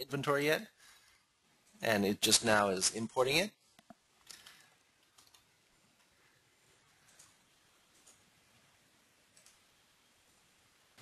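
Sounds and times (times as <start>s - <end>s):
computer mouse clicks: 3.8s - 6.1s, 7.0s - 8.3s, 9.3s - 9.6s.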